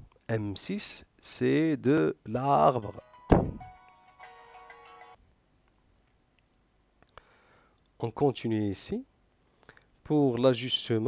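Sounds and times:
short electronic chime: 3.0s - 3.9s
thump with falling pitch sweep: 3.3s - 3.7s.

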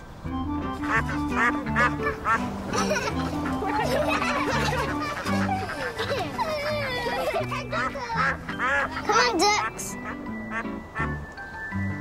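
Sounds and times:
soft background music: 0.0s - 12.0s
duck quacks: 0.8s - 6.2s, 7.7s - 11.1s.

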